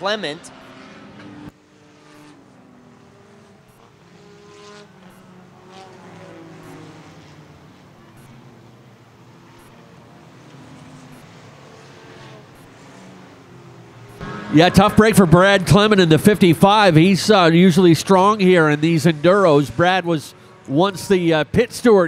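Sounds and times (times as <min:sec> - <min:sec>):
distant race car engines: 0:00.0 - 0:22.0.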